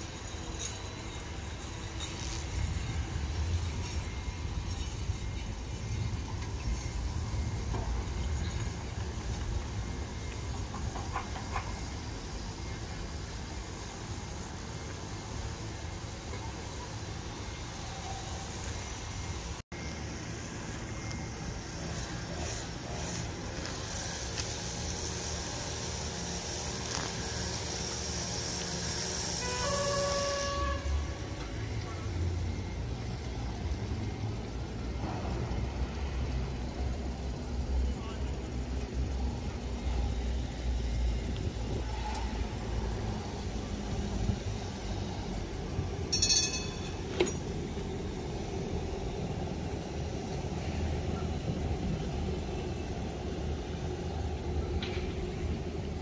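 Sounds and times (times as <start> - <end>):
city street noise: 0.0 - 56.0
tram rumbling on track: 0.0 - 56.0.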